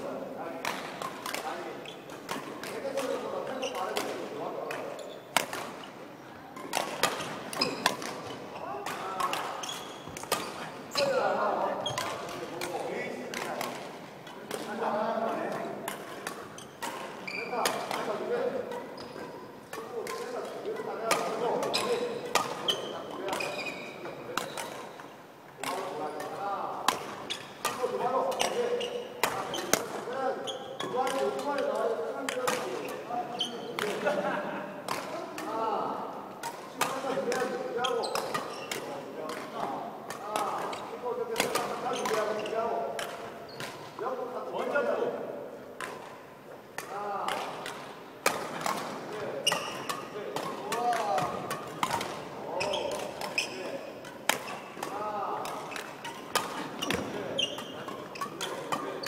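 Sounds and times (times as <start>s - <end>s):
rackets hitting shuttlecocks: 0.6s - 59.0s.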